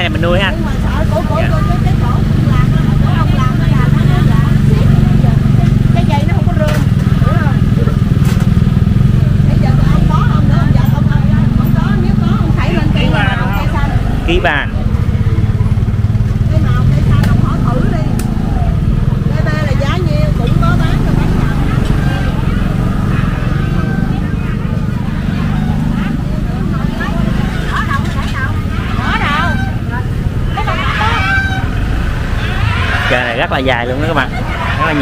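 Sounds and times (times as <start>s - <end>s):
chatter of vendors and shoppers: 0.0s - 35.0s
motorbikes rumbling slowly: 0.0s - 35.0s.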